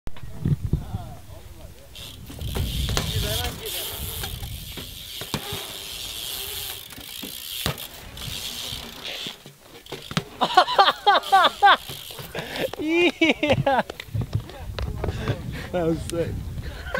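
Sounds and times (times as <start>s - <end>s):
bike tyres rolling: 1.6s - 16.9s
freewheel hub ticking: 2.0s - 10.5s, 11.1s - 12.8s
wheels knocking on ramps: 2.1s - 10.6s.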